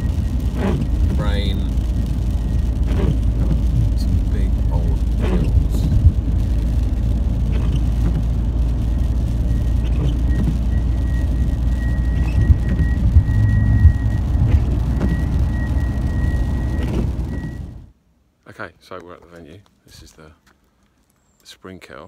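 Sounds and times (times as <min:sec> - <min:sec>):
car road and engine rumble: 0:00.0 - 0:18.4.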